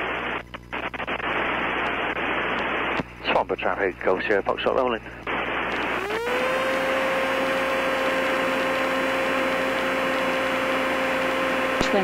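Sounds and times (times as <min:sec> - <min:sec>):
aircraft engine roaring: 0:05.1 - 0:12.0.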